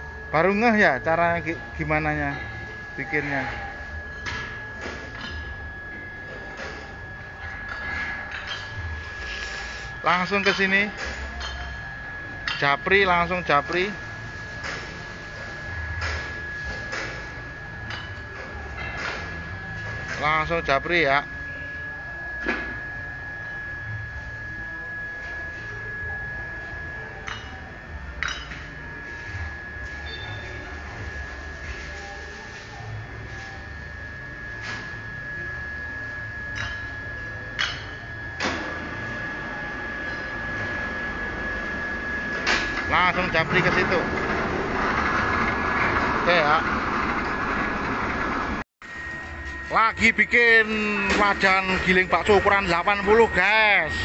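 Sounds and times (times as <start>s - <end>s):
high-pitched whine: 0.0s - 54.0s
workshop machinery running: 0.0s - 54.0s.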